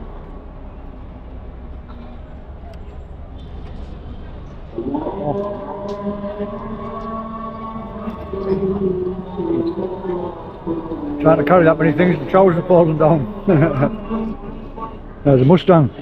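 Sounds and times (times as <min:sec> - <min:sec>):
low traffic rumble: 0:00.0 - 0:16.0
call to prayer over loudspeaker: 0:04.7 - 0:16.0.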